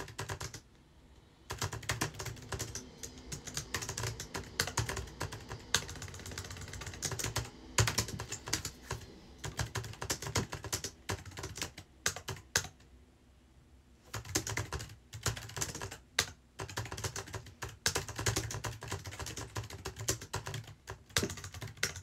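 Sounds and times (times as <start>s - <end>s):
fast typing on computer keyboard: 0.0s - 0.6s, 1.5s - 12.8s, 14.1s - 22.0s.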